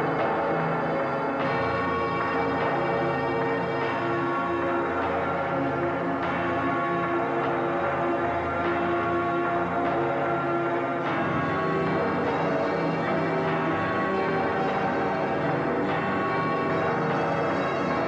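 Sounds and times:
bells ringing: 0:00.0 - 0:18.0.

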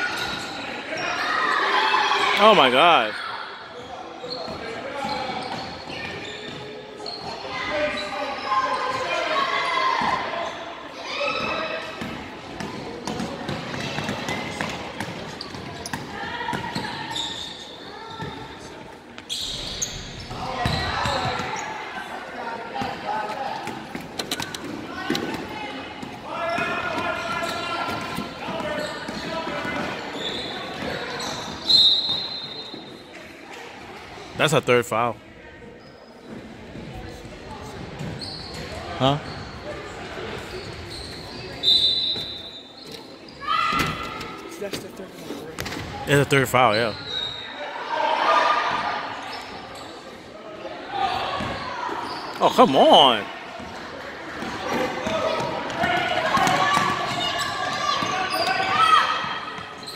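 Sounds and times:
referee's whistle: 0:31.2 - 0:32.8, 0:40.9 - 0:42.9.

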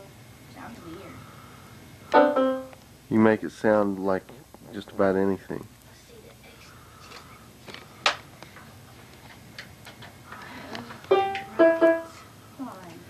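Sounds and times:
electronic keyboard notes: 0:02.1 - 0:02.8, 0:11.1 - 0:12.2.

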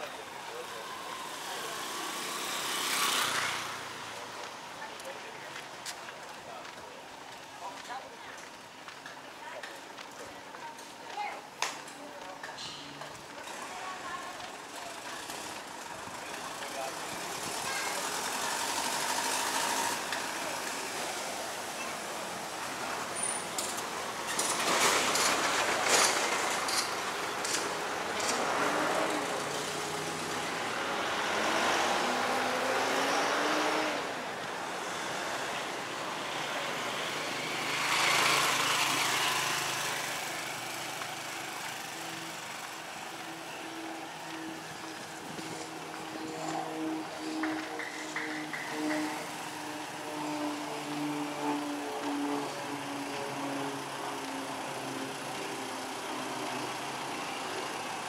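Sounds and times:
vehicles passing by: 0:00.0 - 0:58.0.

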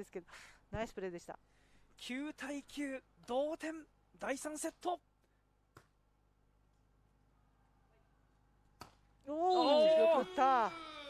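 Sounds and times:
hand smacking volleyball: 0:05.7 - 0:06.0, 0:08.8 - 0:09.1.

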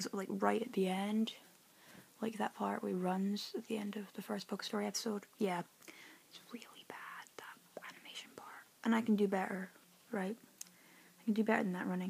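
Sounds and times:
person whispering: 0:06.4 - 0:08.7.

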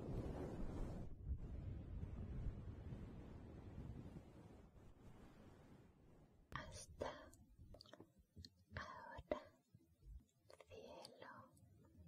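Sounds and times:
woman whispering: 0:06.5 - 0:08.1, 0:08.7 - 0:09.7, 0:10.4 - 0:11.6.

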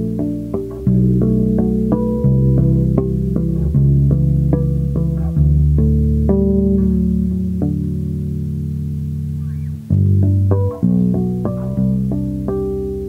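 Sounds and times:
fretless electric bass playing: 0:00.0 - 0:13.0.

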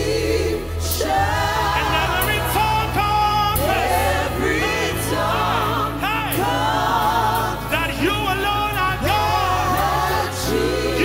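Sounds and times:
vocal team singing gospel: 0:00.0 - 0:11.0.

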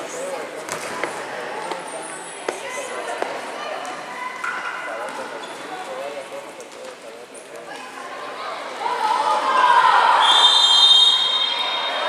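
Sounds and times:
referee's whistle blast: 0:10.2 - 0:12.0.

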